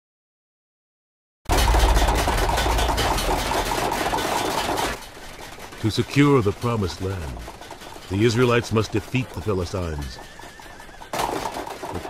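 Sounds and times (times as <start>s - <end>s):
loud steady low rumble: 1.5s - 5.8s.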